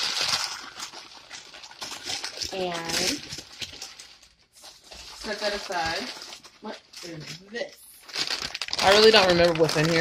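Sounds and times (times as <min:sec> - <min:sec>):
tissue paper rustling: 0:00.0 - 0:10.0.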